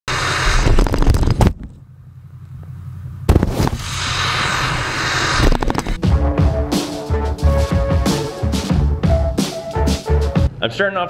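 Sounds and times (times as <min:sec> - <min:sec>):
wind and snow buffeting camera: 0:00.1 - 0:01.9, 0:03.3 - 0:06.0
truck engine rumbling: 0:00.1 - 0:10.6.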